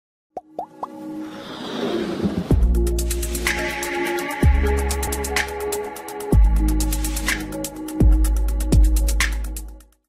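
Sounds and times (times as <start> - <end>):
quick plops rising in pitch: 0.4 - 1.0
music build-up: 0.6 - 9.0
whoosh: 1.2 - 2.8.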